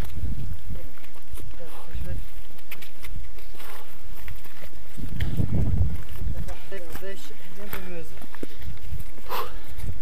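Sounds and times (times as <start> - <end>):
footsteps on rocky trail: 0.0 - 10.0
low rumbling on microphone: 0.0 - 10.0.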